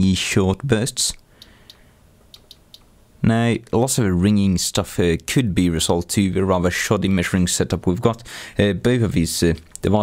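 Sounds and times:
control knobs clicking: 0:01.1 - 0:02.9.

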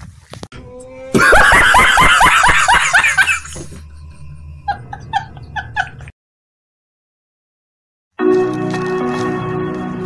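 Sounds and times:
man laughing loudly: 0:01.1 - 0:03.7, 0:04.6 - 0:06.1.

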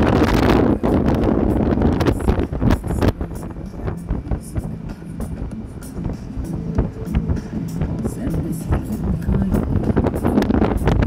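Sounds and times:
wind rushing over motorcycle: 0:00.0 - 0:11.0
music with steady beat: 0:00.4 - 0:11.0.

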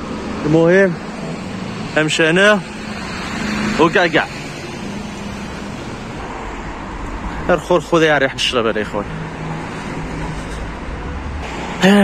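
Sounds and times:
street traffic hum: 0:00.0 - 0:12.0
man speaking: 0:07.4 - 0:09.2, 0:11.8 - 0:12.0.

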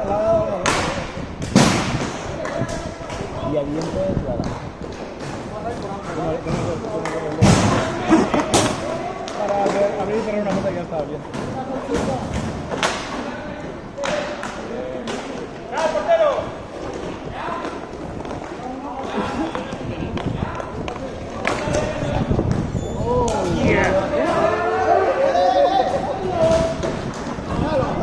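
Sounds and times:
players shouting: 0:23.4 - 0:26.8.

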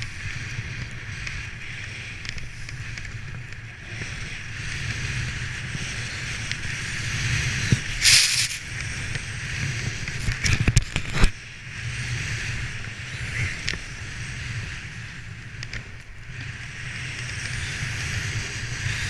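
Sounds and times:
board sliding over snow: 0:00.0 - 0:19.0.

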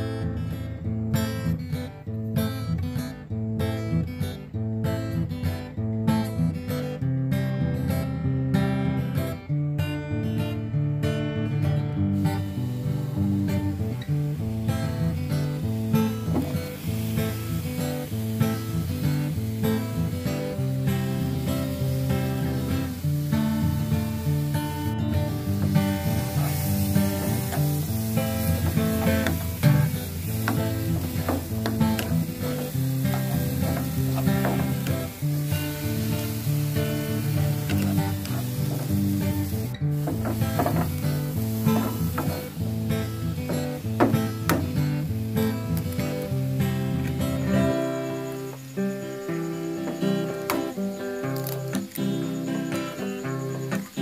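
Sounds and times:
acoustic guitar music: 0:00.0 - 0:54.0
onion sizzling in oil: 0:07.8 - 0:54.0.

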